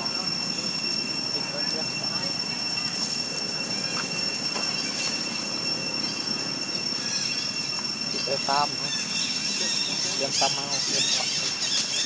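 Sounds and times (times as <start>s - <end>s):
insects droning: 0.0s - 12.0s
rough noisy background: 0.0s - 12.0s.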